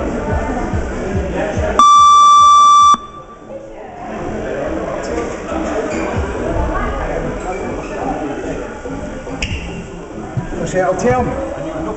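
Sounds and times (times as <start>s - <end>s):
gym music with steady beat: 0.0s - 3.4s
boxing timer electronic beep: 1.8s - 3.3s.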